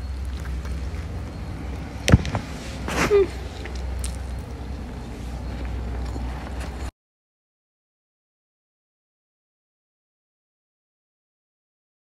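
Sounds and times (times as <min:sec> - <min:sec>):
person chewing food: 0:00.0 - 0:06.9
steady low rumble: 0:00.0 - 0:06.9.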